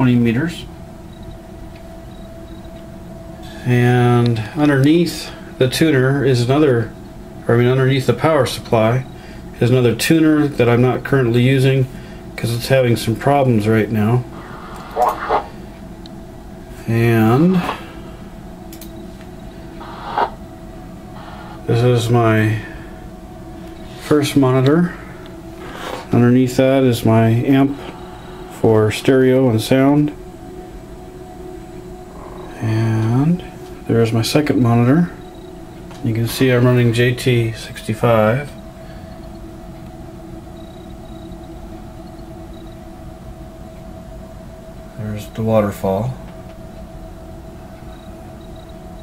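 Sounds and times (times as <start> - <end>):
low hum with faint hiss: 0.0 - 49.0
two steady tones: 0.0 - 49.0.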